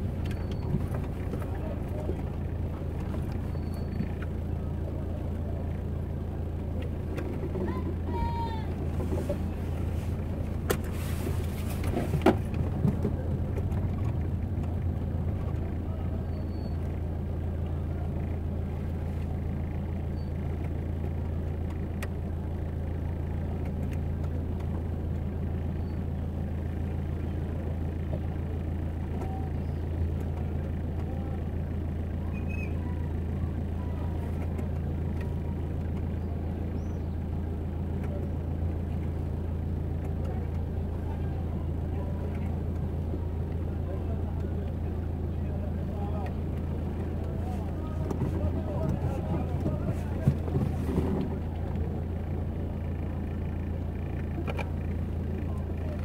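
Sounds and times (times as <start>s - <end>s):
low car engine hum: 0.0s - 56.0s
voices of passers-by: 0.0s - 56.0s.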